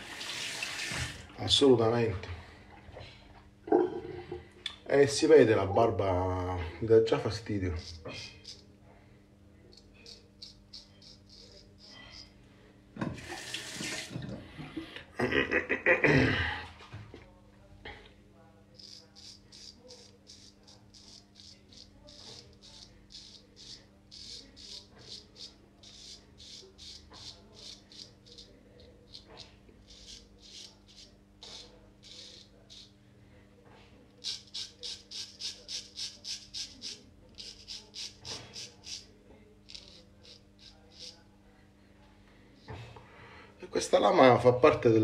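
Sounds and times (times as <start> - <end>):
razor scraping beard stubble: 7.8 - 8.7, 9.7 - 12.3, 18.7 - 32.9, 34.2 - 41.2.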